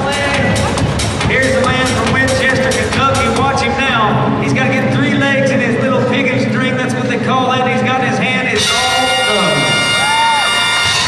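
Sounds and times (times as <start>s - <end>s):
crowd cheering and shouting: 8.6s - 11.0s.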